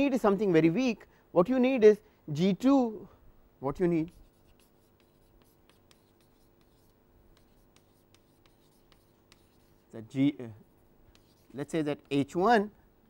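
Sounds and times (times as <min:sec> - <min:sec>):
chalk writing on blackboard: 0:03.8 - 0:10.0, 0:11.1 - 0:12.2.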